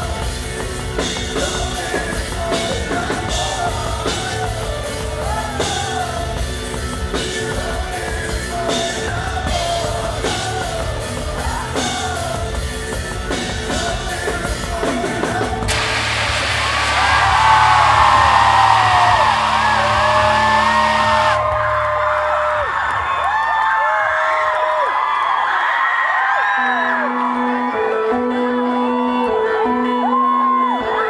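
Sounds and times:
held low bass note: 15.7s - 21.9s
crowd cheering and screaming: 15.7s - 31.0s.

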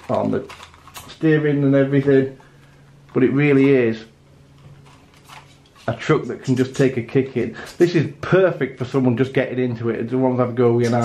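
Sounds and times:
man speaking: 0.0s - 2.4s, 3.1s - 4.2s, 5.8s - 11.0s.

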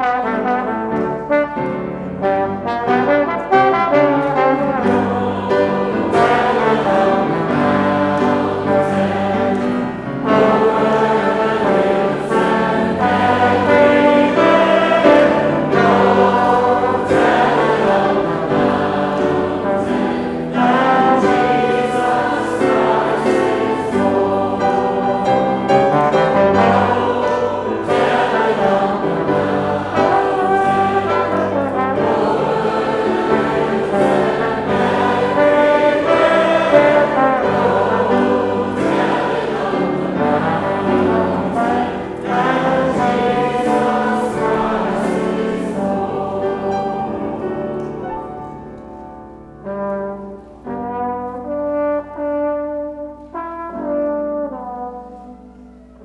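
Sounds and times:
trombone: 0.0s - 47.0s, 49.6s - 56.0s
voices singing a hymn: 0.0s - 49.4s
grand piano: 0.0s - 56.0s.

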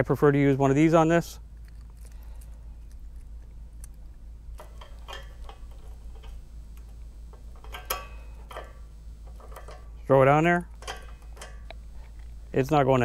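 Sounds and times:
padlock clicking and rattling: 1.5s - 10.0s, 10.7s - 12.4s.

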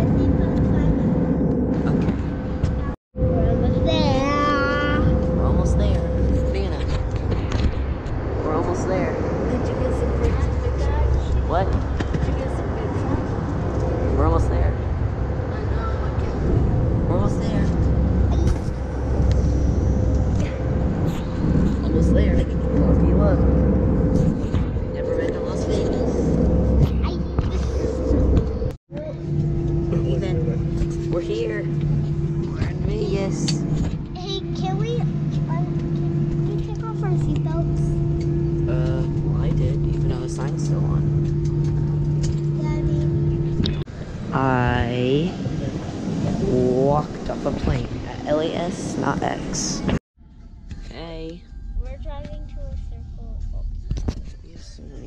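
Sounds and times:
indistinct voices: 0.0s - 50.0s
airliner cabin drone: 0.0s - 54.0s
two-tone steady drone: 0.0s - 54.0s.

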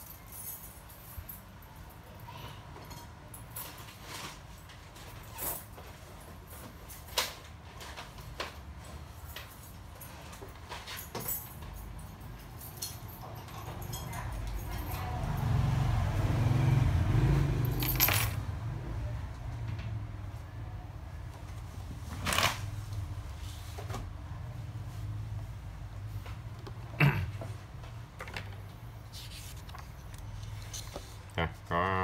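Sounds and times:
small metallic jingles: 8.9s - 15.6s, 17.6s - 18.5s.

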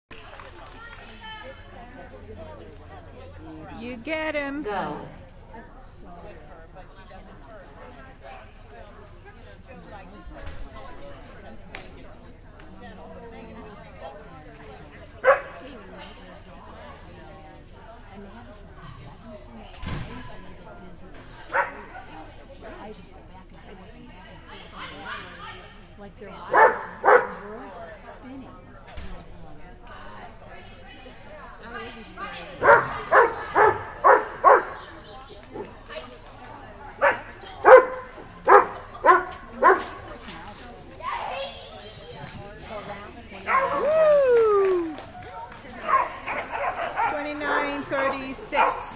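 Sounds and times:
faint background voices: 0.1s - 48.9s
dog barking: 15.2s - 15.6s, 21.5s - 22.0s, 26.5s - 27.4s, 32.6s - 34.8s, 37.0s - 40.0s, 45.8s - 47.7s, 48.6s - 48.8s.

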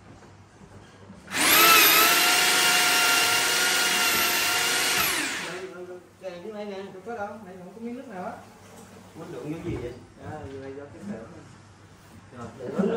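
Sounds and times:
electric drill spinning drain cable: 1.3s - 5.7s.

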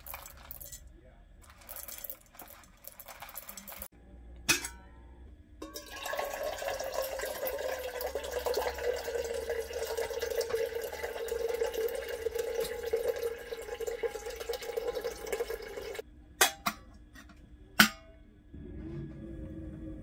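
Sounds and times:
water running into metal kettle: 0.0s - 0.8s, 1.4s - 3.9s, 5.6s - 16.0s
coffee beans rattling into canister: 0.0s - 3.9s.

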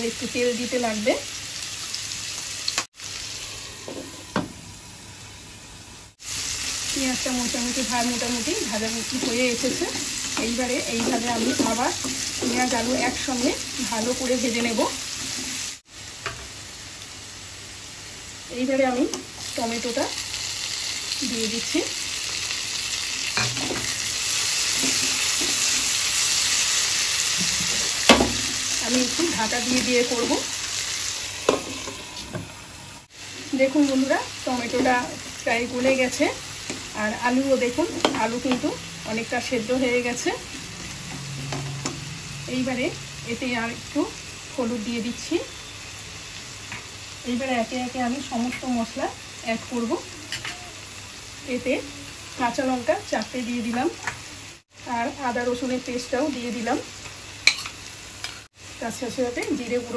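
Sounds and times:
potatoes and onions sizzling in oil: 0.0s - 59.9s.

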